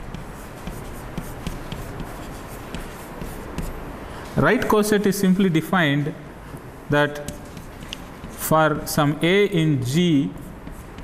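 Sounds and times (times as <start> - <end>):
chalk scratching on blackboard: 0.0 - 3.8, 7.2 - 8.6, 9.9 - 11.0.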